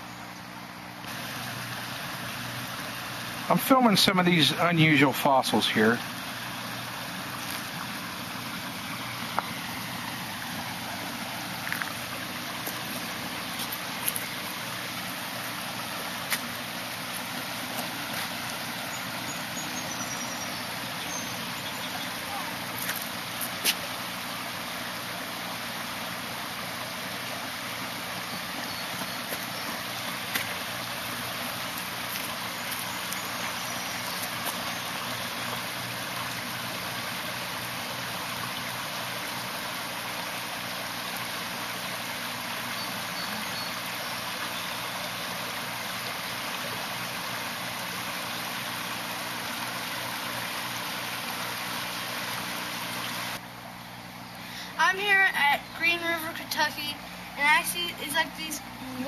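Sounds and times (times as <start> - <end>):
river water rushing: 0.8 - 59.0.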